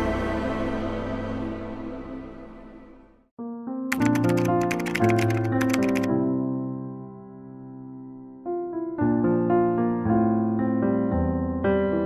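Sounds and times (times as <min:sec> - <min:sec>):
music track: 0:03.9 - 0:06.1
rapid keyboard typing clicks: 0:03.9 - 0:06.1.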